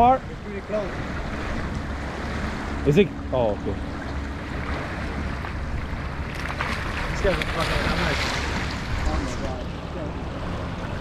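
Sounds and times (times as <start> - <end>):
water lapping against seawall: 0.0 - 11.0
wind rumbling on microphone: 0.0 - 11.0.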